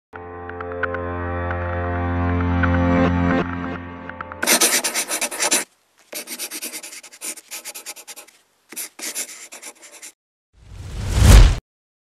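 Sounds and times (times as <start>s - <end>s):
pen scribbling on paper: 4.4s - 10.2s.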